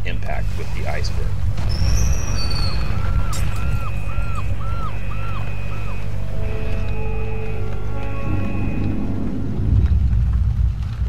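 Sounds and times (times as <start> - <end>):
deep low rumble: 0.0 - 11.0.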